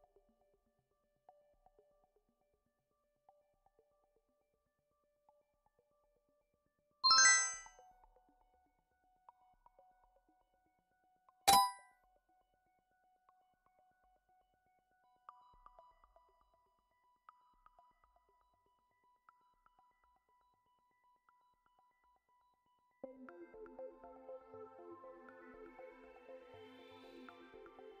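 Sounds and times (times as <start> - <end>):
bright electronic chime: 7.0 - 7.7, 11.5 - 11.8
countdown timer ticking: 7.0 - 7.7, 11.5 - 11.8.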